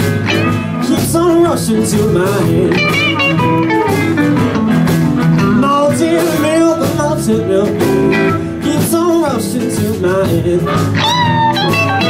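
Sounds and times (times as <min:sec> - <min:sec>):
blues band playing: 0:00.0 - 0:12.0.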